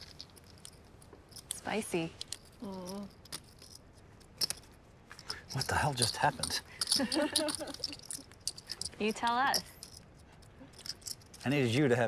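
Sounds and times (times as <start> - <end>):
poker chips clicking: 0.0 - 11.6.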